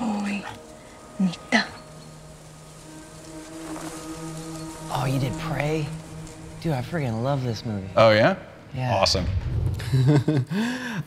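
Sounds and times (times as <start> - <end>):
higher held music note: 0.0 - 9.1
low sustained music note: 0.0 - 10.3
faint ambience: 0.0 - 10.5.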